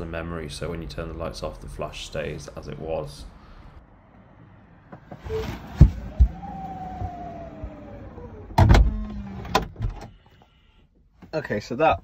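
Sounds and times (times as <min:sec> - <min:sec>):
car door shutting thump: 0:08.6 - 0:10.0.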